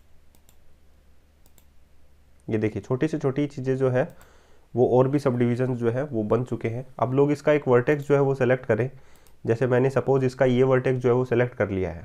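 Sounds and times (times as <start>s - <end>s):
computer mouse clicks: 0.0s - 0.7s, 1.4s - 1.8s, 4.0s - 4.4s, 9.1s - 9.4s
quiet background hum: 0.0s - 12.0s.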